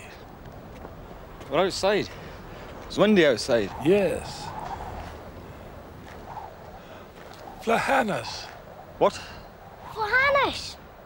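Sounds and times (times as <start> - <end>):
wind blowing: 0.0 - 11.0.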